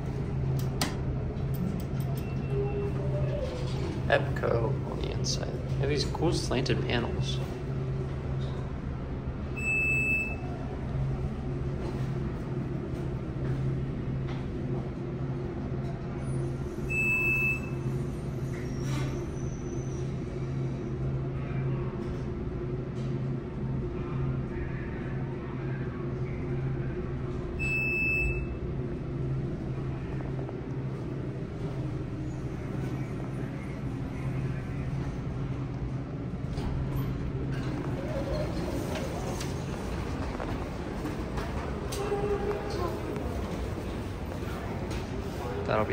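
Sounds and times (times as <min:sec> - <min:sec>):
steady low hum: 0:00.0 - 0:45.9
elevator high beep: 0:02.0 - 0:03.4, 0:09.4 - 0:10.8, 0:16.2 - 0:20.3, 0:27.5 - 0:29.1
high electronic elevator beep: 0:09.6 - 0:10.5, 0:16.9 - 0:17.9, 0:27.6 - 0:28.6.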